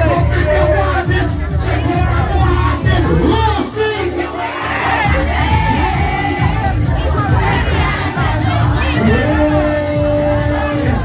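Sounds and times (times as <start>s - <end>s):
crowd singing and shouting: 0.0s - 11.0s
party music with heavy bass: 0.0s - 11.0s.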